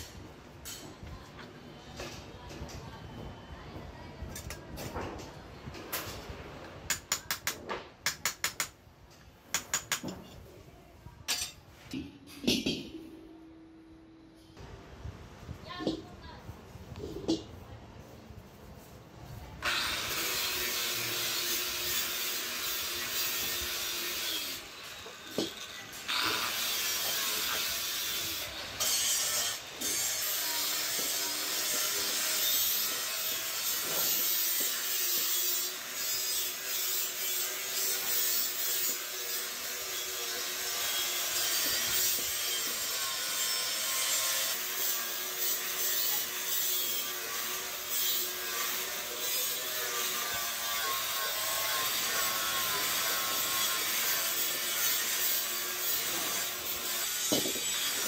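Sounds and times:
angle grinder grinding metal: 0:19.6 - 0:58.0.

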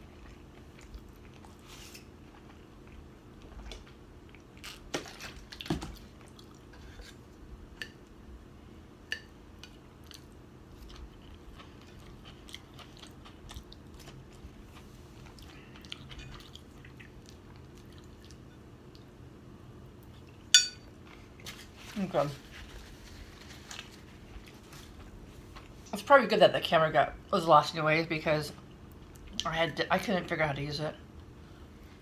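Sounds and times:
chewing and crunching food: 0:00.0 - 0:08.2, 0:09.5 - 0:19.2, 0:19.9 - 0:25.9
metal fork clinking on plate: 0:20.6 - 0:20.9.

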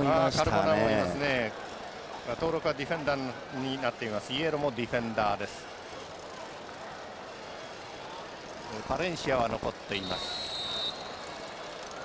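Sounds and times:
stadium crowd murmur: 0:00.0 - 0:12.0
referee's whistle blast: 0:10.0 - 0:11.4.

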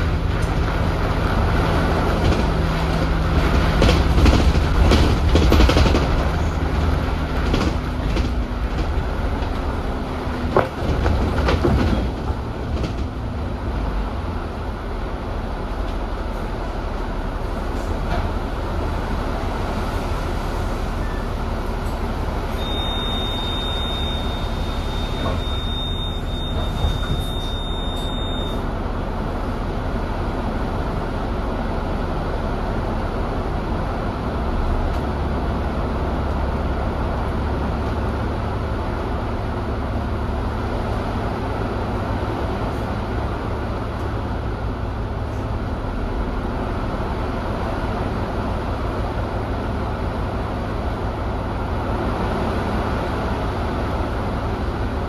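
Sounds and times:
bus body rattles: 0:00.0 - 0:55.0
bus engine running: 0:00.0 - 0:55.0.

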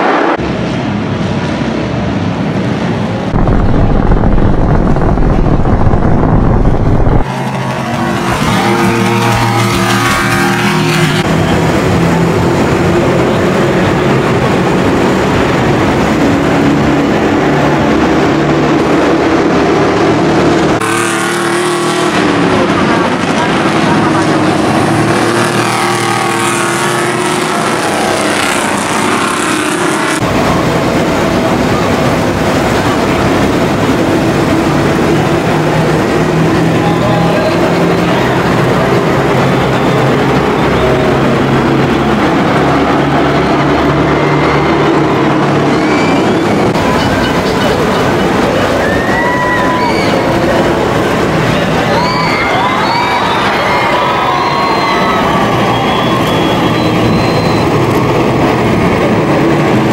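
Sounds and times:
racing truck engines accelerating: 0:00.0 - 0:59.9.

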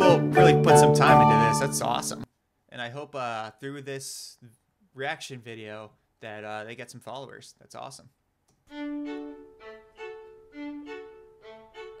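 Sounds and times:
two violins playing slow duet: 0:08.7 - 0:12.0.

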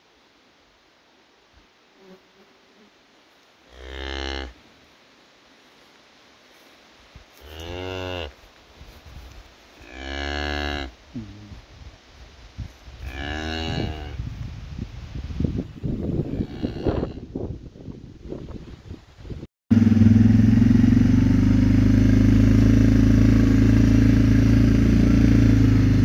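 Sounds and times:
cow mooing low: 0:13.0 - 0:14.2, 0:16.2 - 0:17.3.

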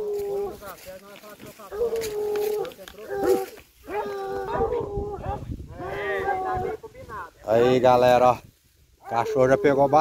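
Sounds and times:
hound baying: 0:01.7 - 0:05.4.

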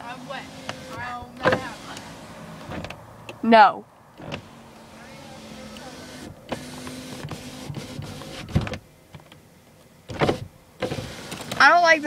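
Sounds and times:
low motor hum: 0:00.0 - 0:09.0.

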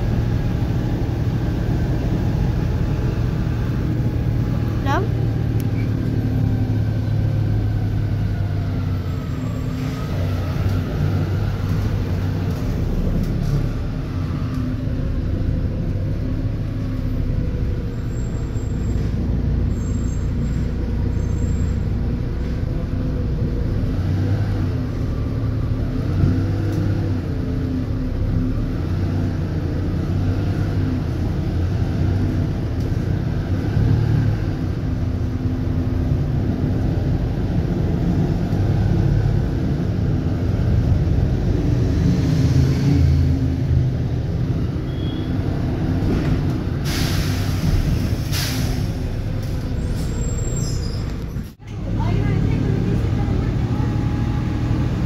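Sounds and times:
bus diesel engine humming: 0:00.0 - 0:55.0
road noise: 0:00.0 - 0:55.0.

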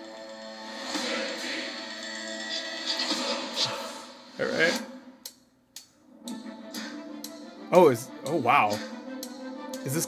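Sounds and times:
trailer music: 0:00.0 - 0:10.0.

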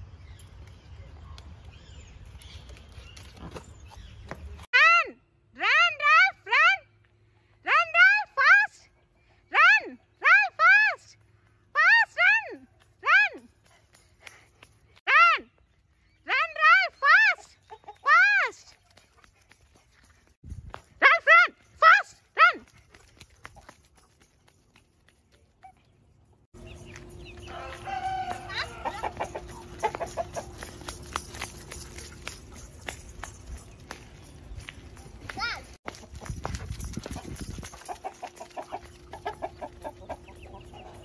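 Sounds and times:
chickens clucking: 0:28.2 - 0:30.6, 0:37.1 - 0:41.0.

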